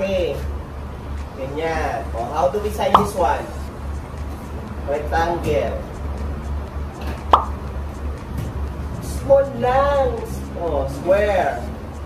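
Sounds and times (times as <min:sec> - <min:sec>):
plop sound effect: 0:03.0 - 0:03.2, 0:07.4 - 0:07.6.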